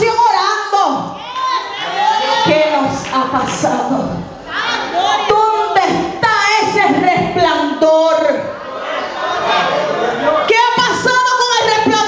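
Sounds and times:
woman preaching through microphone: 0.0 - 1.2, 2.2 - 4.4, 5.0 - 8.5, 10.4 - 12.0
congregation calling out: 0.0 - 12.0.

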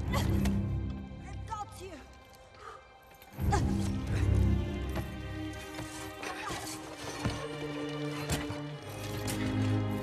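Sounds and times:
dramatic film score: 0.0 - 10.0.

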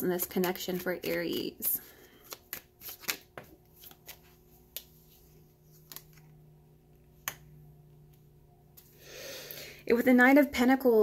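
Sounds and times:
faint steady hum: 0.0 - 11.0
cards being shuffled: 0.2 - 6.3.

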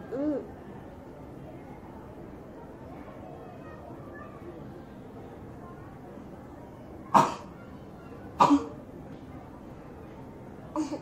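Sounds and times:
person coughing: 8.4 - 8.7.

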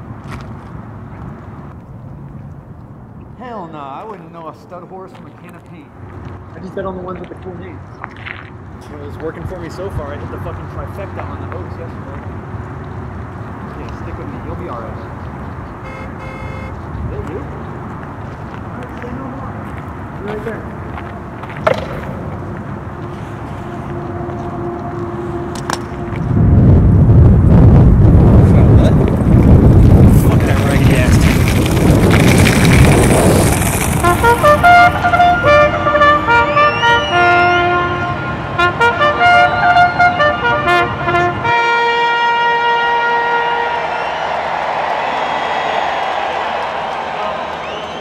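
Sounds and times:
brass bugle call: 15.8 - 16.8, 22.9 - 26.4, 34.0 - 44.4
crowd roaring and cheering: 35.0 - 40.6, 42.5 - 48.0.

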